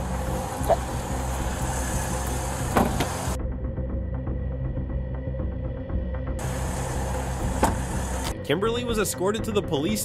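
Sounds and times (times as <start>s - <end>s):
car engine idling: 0.0s - 3.4s, 6.4s - 8.4s
short thump: 2.7s - 3.2s, 7.5s - 8.0s.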